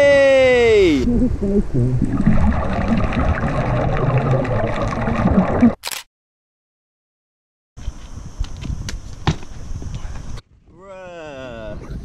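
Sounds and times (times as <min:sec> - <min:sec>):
underwater bubbling and gurgling: 0:01.3 - 0:05.8.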